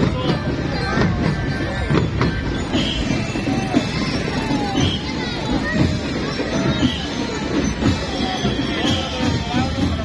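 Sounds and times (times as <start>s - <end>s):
large crowd noise: 0.0s - 10.0s
marching band percussion: 0.0s - 10.0s.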